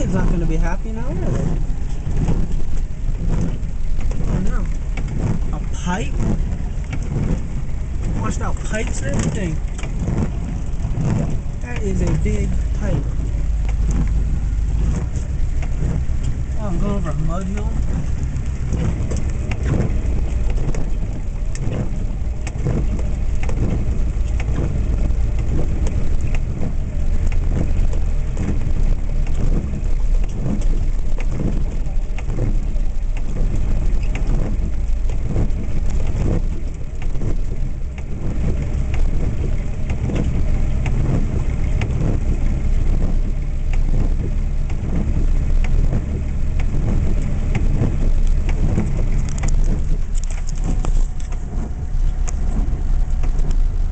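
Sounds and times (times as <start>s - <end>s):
small knocks and patters: 0.0s - 53.9s
vehicle engine and road rumble: 0.0s - 53.9s.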